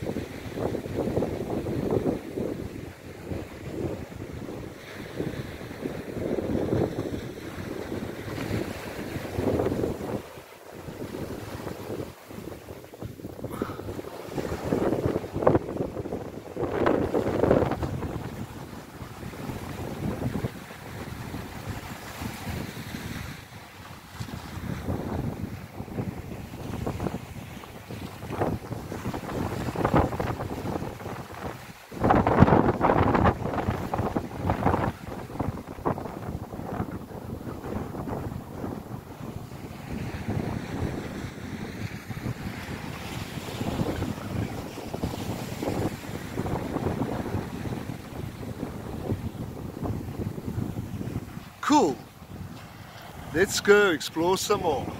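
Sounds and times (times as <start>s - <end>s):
wind buffeting microphone: 0.0s - 53.8s
small waves breaking on shore: 0.0s - 54.9s.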